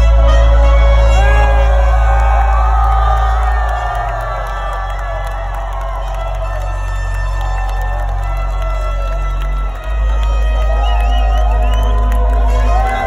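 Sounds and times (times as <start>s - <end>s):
crowd cheering and shouting: 0.0s - 13.0s.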